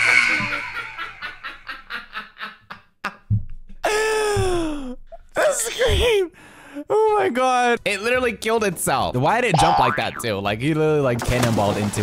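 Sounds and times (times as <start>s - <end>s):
man laughing hard: 0.0s - 3.3s.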